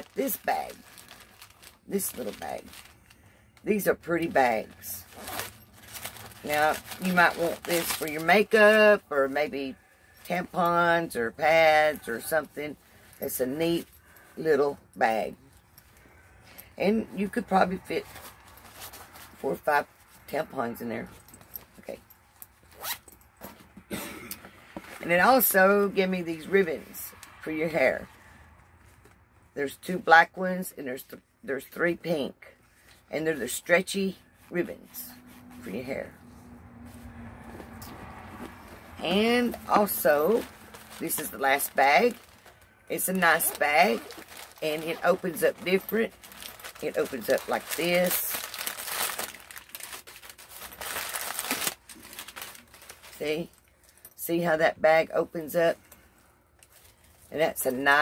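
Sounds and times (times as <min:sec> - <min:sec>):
fabric bag rustling: 0:00.0 - 0:24.0, 0:32.9 - 0:54.2
zipper pulled open: 0:05.0 - 0:08.7, 0:22.6 - 0:23.6, 0:37.4 - 0:48.2.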